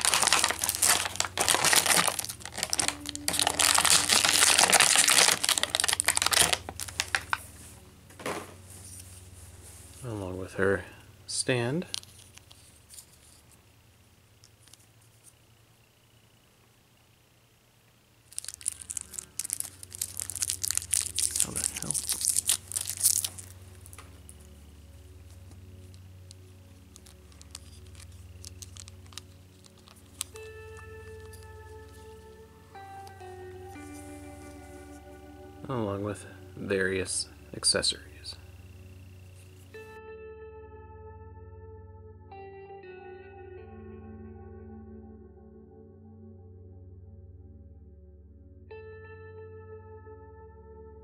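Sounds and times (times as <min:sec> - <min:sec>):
plastic packaging crinkling: 0:00.0 - 0:09.3, 0:11.8 - 0:13.6, 0:18.3 - 0:35.0.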